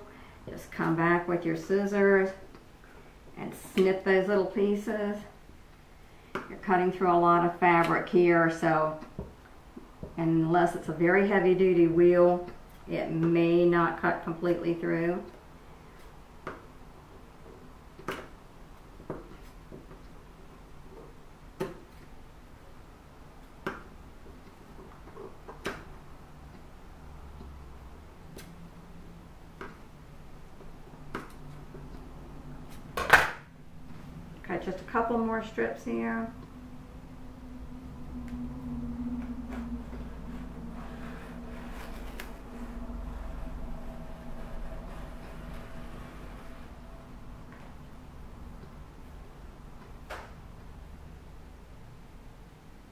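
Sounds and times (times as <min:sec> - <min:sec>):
steady low hum: 0:00.0 - 0:52.9.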